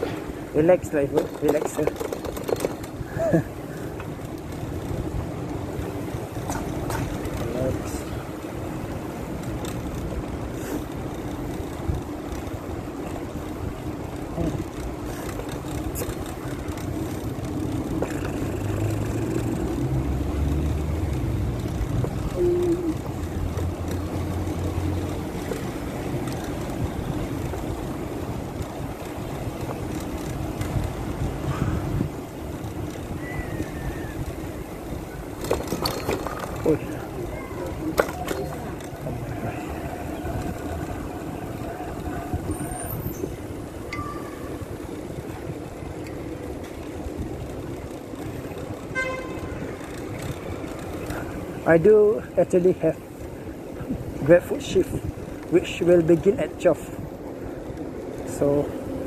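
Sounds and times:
bicycle tyre rumble on pavement: 0:00.0 - 0:59.0
wind rush over microphone: 0:30.6 - 0:32.3.

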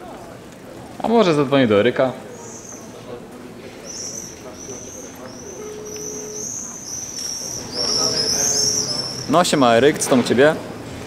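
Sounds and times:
small birds chirping: 0:02.3 - 0:03.0, 0:03.8 - 0:09.4.

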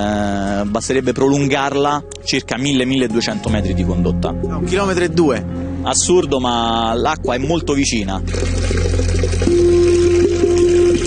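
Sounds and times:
water running from fountain spout: 0:08.2 - 0:11.0.

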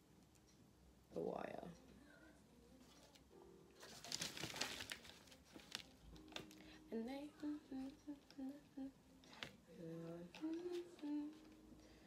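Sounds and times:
woman humming: 0:06.9 - 0:09.0.

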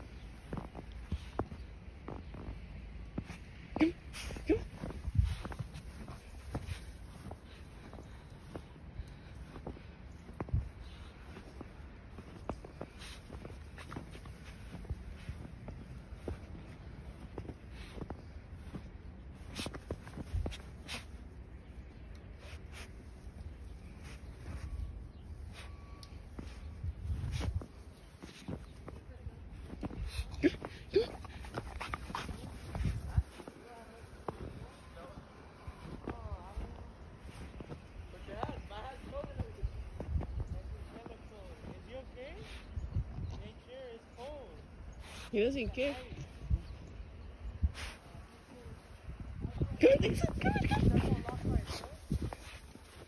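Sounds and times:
crunching footsteps in snow: 0:00.0 - 0:42.7, 0:47.8 - 0:53.0.

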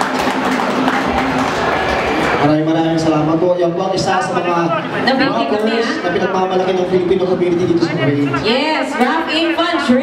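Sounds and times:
audience applause: 0:00.0 - 0:02.6.

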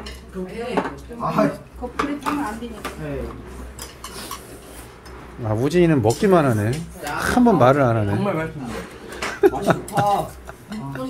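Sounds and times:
utensils clinking against bowls: 0:03.7 - 0:05.2, 0:06.0 - 0:08.0, 0:08.9 - 0:11.0.

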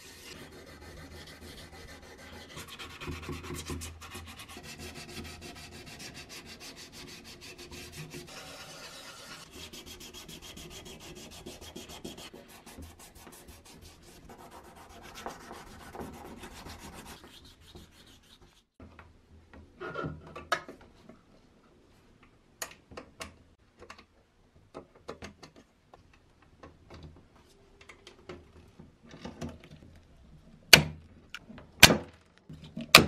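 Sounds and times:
sandpaper scrubbing metal: 0:00.0 - 0:18.7.

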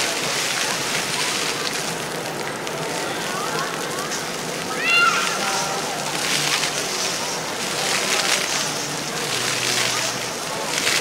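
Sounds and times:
water falling on pavement: 0:00.0 - 0:11.0
children's voices: 0:03.0 - 0:06.0.

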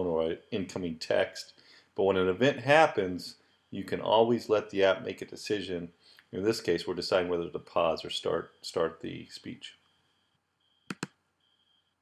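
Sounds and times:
faint high-pitched whine: 0:00.0 - 0:12.0
computer mouse clicks: 0:10.9 - 0:11.2.

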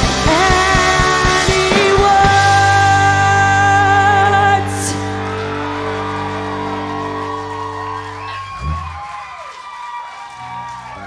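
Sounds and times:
electric guitar and bass chord: 0:00.0 - 0:09.2
audience cheering and whooping: 0:04.6 - 0:11.0.

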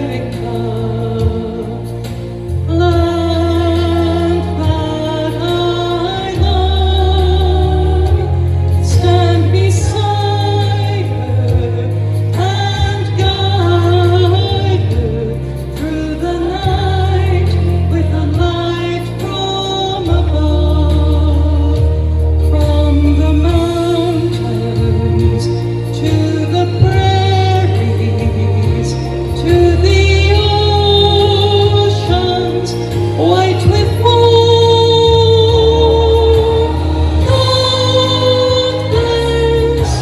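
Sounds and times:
instrumental accompaniment with bass: 0:00.0 - 0:40.0
woman singing gospel song: 0:00.0 - 0:40.0.

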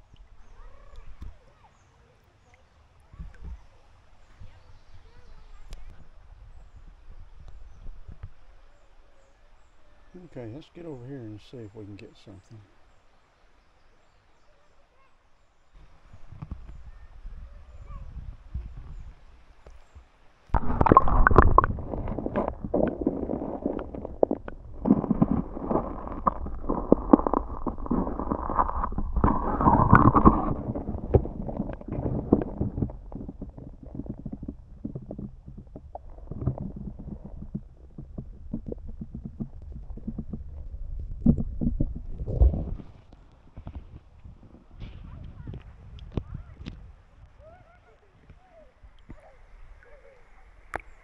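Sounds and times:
underwater rumbling: 0:20.5 - 0:47.6.

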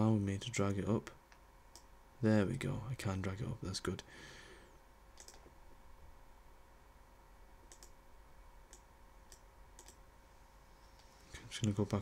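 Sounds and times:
computer mouse clicking: 0:05.2 - 0:05.5, 0:07.7 - 0:08.0, 0:08.7 - 0:10.0.

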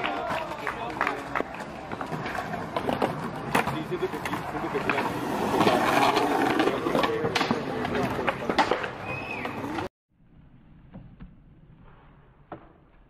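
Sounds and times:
skateboard clacks on concrete: 0:00.0 - 0:09.9.

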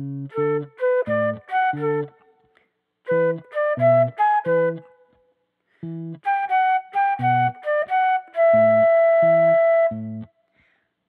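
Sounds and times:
flute melody: 0:00.0 - 0:02.5, 0:03.1 - 0:10.4.

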